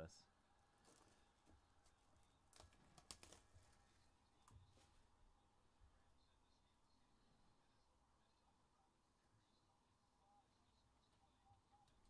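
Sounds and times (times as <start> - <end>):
plastic wrapping crinkling: 0.8 - 4.0.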